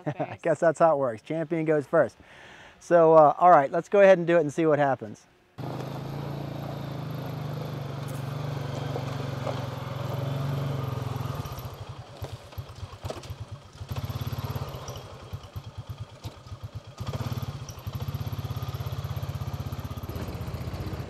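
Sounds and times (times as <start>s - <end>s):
four-wheeler engine revving: 5.6s - 21.0s.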